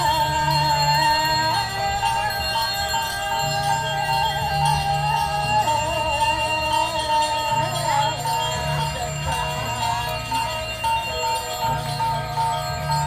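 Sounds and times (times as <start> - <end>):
low sustained tones: 0.0 - 13.0
steady bell-like ringing: 0.0 - 13.0
wavering ornamented melody: 0.0 - 13.0.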